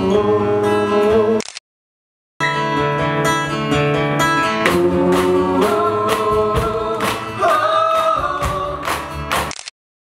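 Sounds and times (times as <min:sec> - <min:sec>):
acoustic guitar: 0:00.0 - 0:01.4, 0:02.4 - 0:09.5
voices singing long notes: 0:04.7 - 0:08.9
handclaps: 0:08.8 - 0:09.5.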